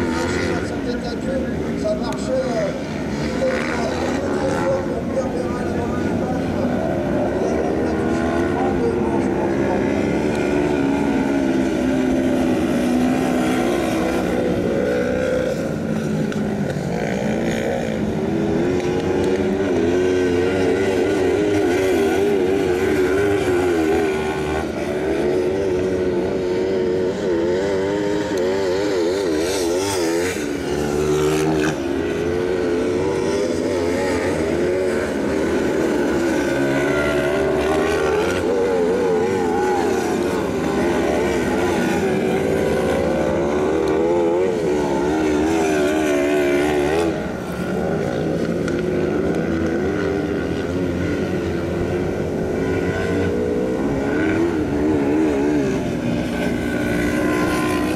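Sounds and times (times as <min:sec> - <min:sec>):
motorcycle engines revving: 0:00.0 - 0:57.9.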